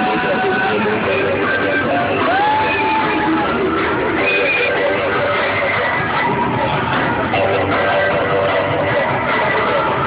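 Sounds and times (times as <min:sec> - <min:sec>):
crowd noise: 0:00.0 - 0:10.0
loud dance music: 0:00.0 - 0:10.0
person whooping: 0:02.2 - 0:03.5.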